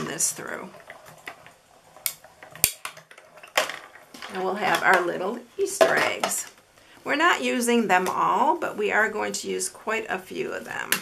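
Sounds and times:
plastic plates clattering: 0.8 - 6.6.

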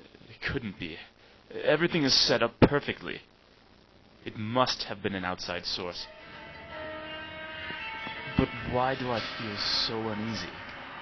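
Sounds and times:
soft sustained chord music: 6.0 - 11.0.

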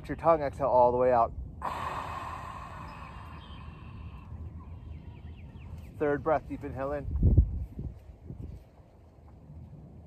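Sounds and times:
wind rumble on microphone: 0.0 - 10.0
forceful breathy exhale: 1.6 - 4.4
faint bird chirps: 2.4 - 6.2.

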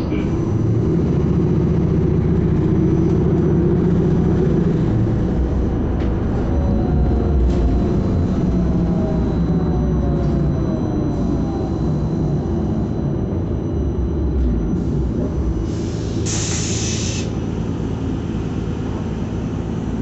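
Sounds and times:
bus engine and road noise: 0.0 - 20.0.

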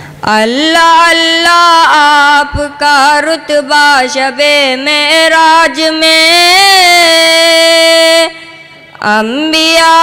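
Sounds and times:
boy singing long note: 0.2 - 10.0.

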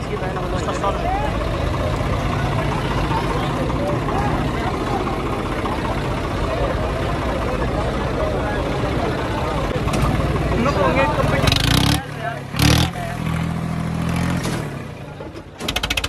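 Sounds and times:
crowd of men chattering: 0.0 - 16.0
diesel tractor idling: 0.0 - 16.0.

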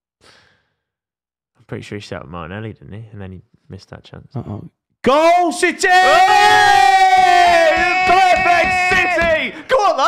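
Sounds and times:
man shouting in celebration: 5.2 - 10.0.

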